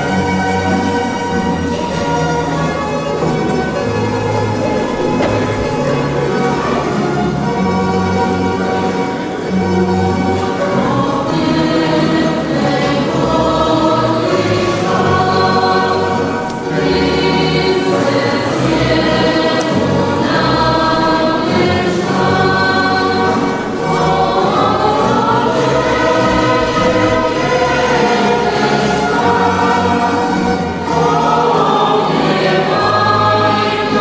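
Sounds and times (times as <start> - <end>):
choir singing long notes: 0.0 - 34.0.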